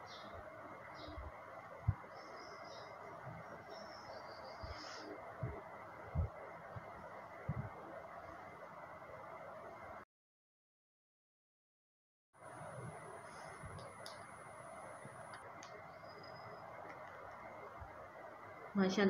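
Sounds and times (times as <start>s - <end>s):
faint bird chirps: 0.0s - 1.3s, 1.9s - 5.2s, 15.8s - 16.8s
steady background hiss: 12.4s - 19.0s.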